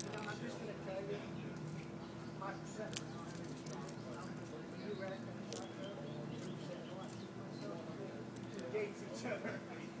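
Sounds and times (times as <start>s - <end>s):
indistinct voices talking: 0.0s - 9.2s
steady low hum: 0.0s - 10.0s.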